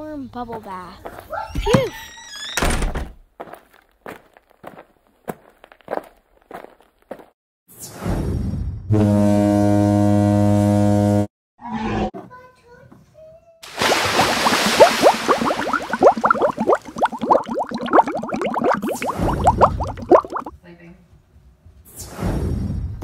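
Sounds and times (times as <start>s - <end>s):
water splashing in metal bowl: 13.6s - 20.5s.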